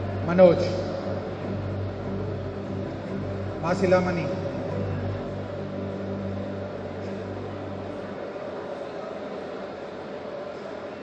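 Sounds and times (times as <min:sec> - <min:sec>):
steady low hum: 0:00.0 - 0:10.5.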